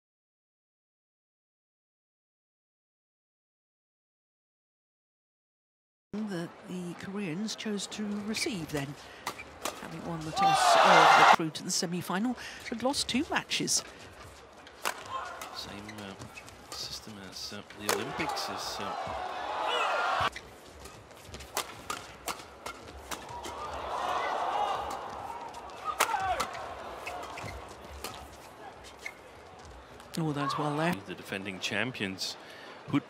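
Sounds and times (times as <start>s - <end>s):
faint arena ambience: 6.2s - 33.0s
racquets hitting shuttlecock: 8.8s - 11.3s, 14.7s - 15.6s, 17.8s - 18.4s, 20.2s - 23.8s, 24.7s - 29.2s
racket striking shuttlecock: 14.8s - 15.6s, 20.8s - 23.5s, 25.9s - 28.3s.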